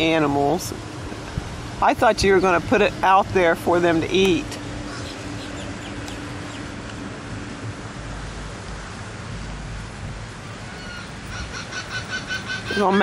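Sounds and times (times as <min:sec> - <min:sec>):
steady rushing noise: 0:00.0 - 0:13.0
faint bird calls: 0:04.9 - 0:06.6, 0:10.7 - 0:13.0.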